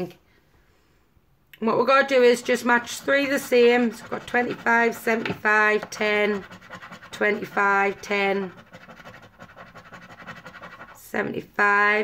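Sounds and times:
coin scraping scratch card: 2.4 - 11.0.

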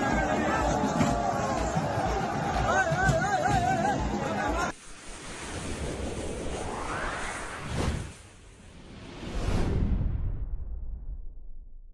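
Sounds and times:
rising whoosh: 4.7 - 11.8.

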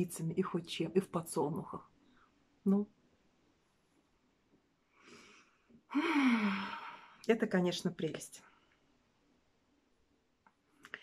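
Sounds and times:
woman sighing: 5.9 - 7.2.

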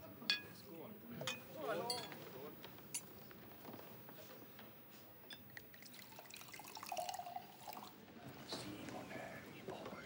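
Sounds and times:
faint indistinct voices: 7.7 - 10.0.

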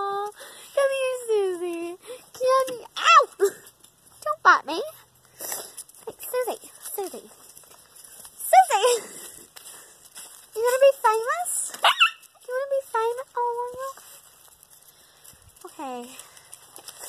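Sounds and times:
dog whining and yelping: 11.8 - 12.3.

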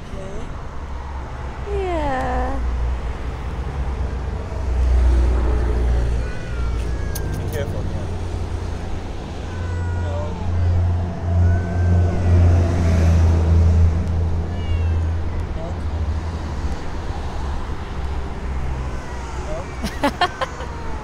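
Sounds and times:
cat meowing faintly: 5.1 - 13.2, 14.4 - 16.9.

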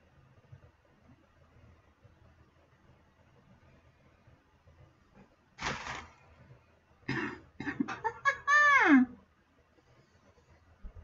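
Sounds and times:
woman coughing: 7.1 - 8.0.

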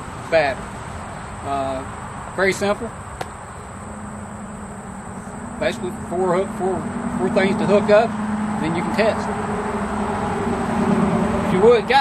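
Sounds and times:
low steady hum: 0.0 - 11.9
high-pitched insect drone: 2.7 - 11.4.

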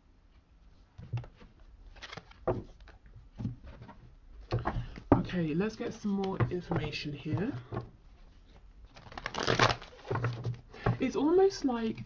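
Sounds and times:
cards being shuffled: 1.2 - 3.0, 8.9 - 10.5
cards snapping: 2.0 - 2.4.

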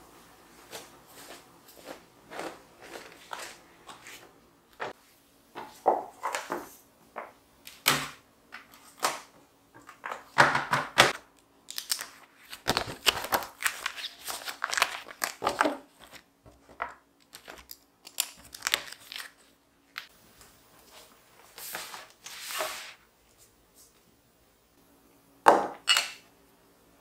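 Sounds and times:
paper rustling: 11.7 - 20.1.

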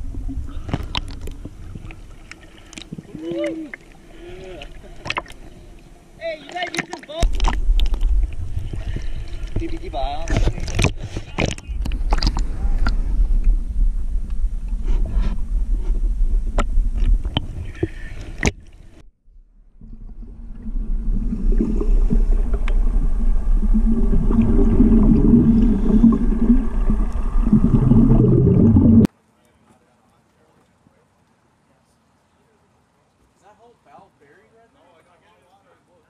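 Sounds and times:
muffled underwater rumble: 0.0 - 6.0, 7.2 - 29.1
water sloshing and splashing: 0.0 - 13.5, 19.7 - 29.1
scuba exhaust bubbling: 19.7 - 29.1.

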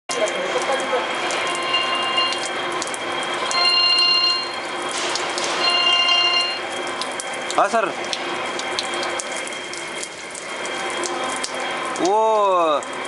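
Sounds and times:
water pouring from a pipe and splashing: 0.1 - 13.0
high machine whine: 0.2 - 13.0.

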